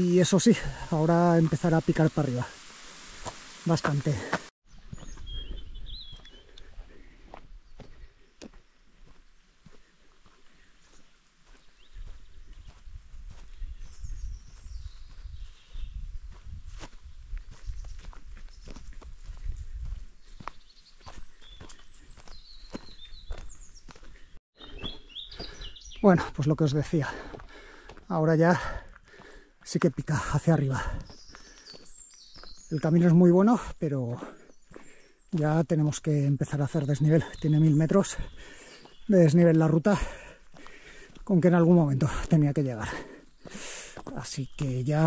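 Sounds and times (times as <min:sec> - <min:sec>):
birds chirping: 0:00.0 - 0:45.0
footsteps on gravel: 0:03.2 - 0:15.8, 0:16.4 - 0:45.0.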